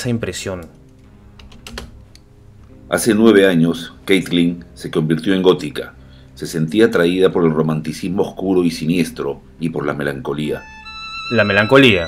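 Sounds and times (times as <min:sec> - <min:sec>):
computer keyboard clicks: 0:00.6 - 0:02.0.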